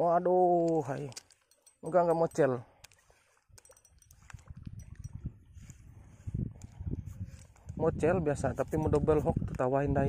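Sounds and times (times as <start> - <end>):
fishing reel clicking: 0.7 - 5.2.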